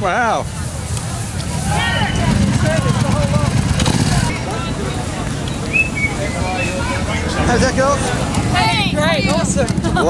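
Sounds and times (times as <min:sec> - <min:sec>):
motorcycle engine rumbling: 0:00.0 - 0:10.0
voices talking: 0:00.0 - 0:10.0.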